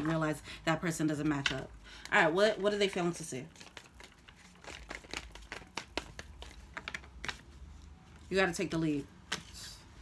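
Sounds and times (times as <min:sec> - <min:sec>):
cards being shuffled: 0:03.6 - 0:08.0.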